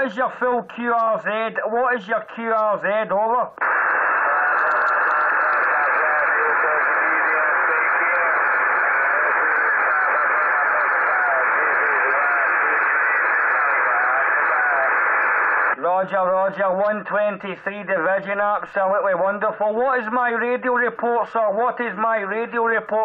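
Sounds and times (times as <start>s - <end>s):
radio static hiss: 3.5s - 19.0s
faint voice through static: 3.5s - 20.3s.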